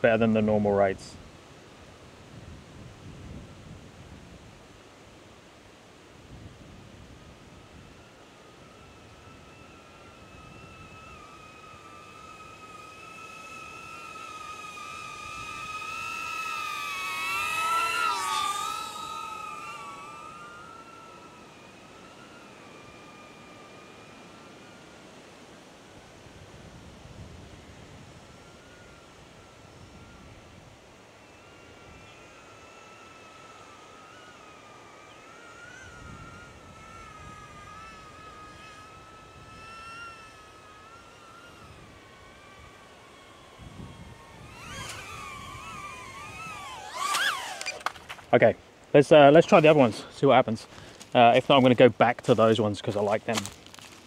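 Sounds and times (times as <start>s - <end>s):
drone propellers whining: 0.0s - 54.0s.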